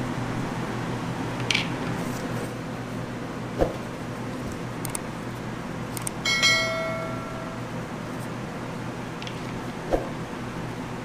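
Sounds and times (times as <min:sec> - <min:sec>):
steady low hum: 0:00.0 - 0:11.0
bright bell ding: 0:06.2 - 0:07.7.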